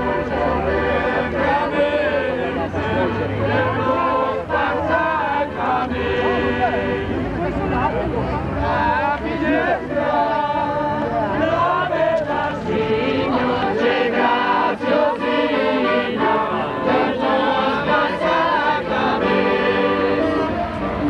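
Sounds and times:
group singing in chorus: 0:00.0 - 0:07.4, 0:08.6 - 0:21.0.

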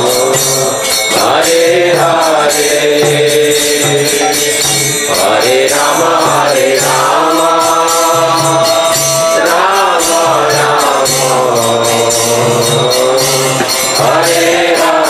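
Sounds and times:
jingling hand percussion: 0:00.0 - 0:15.0
voices chanting a melody: 0:00.0 - 0:15.0.

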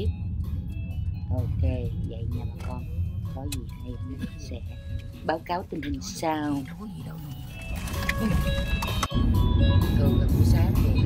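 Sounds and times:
background music: 0:00.0 - 0:11.0
car road and engine rumble: 0:00.0 - 0:11.0.

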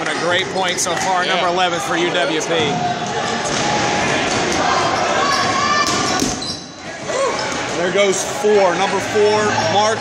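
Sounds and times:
players' voices: 0:00.0 - 0:10.0
balls bouncing off gym floor: 0:05.8 - 0:06.4.

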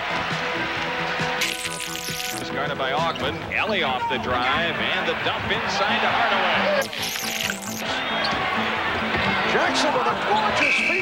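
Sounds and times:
basketball game sound: 0:00.0 - 0:11.0.

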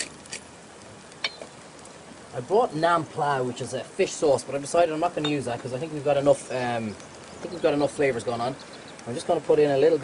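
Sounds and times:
vegetables sizzling in a pan: 0:00.0 - 0:10.0.

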